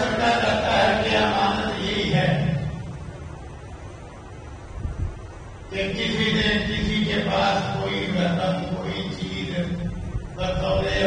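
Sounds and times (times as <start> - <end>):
man chanting melodically: 0.0 - 3.0, 5.7 - 11.0.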